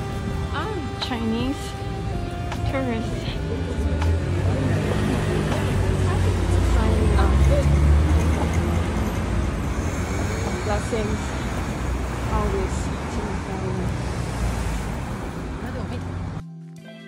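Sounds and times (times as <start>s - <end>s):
people chattering: 0.0s - 16.2s
passing vehicle engine rumble: 0.0s - 16.4s.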